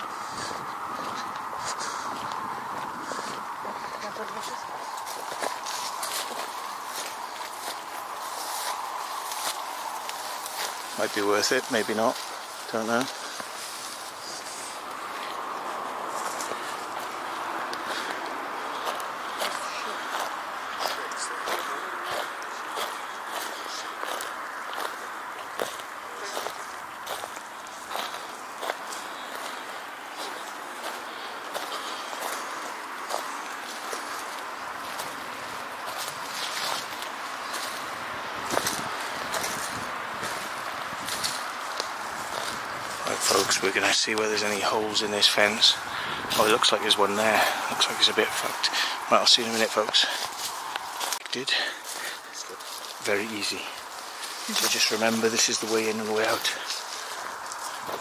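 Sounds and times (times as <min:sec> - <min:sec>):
footsteps on grass and mulch: 0:00.0 - 0:58.0
steady hiss: 0:00.0 - 0:58.0.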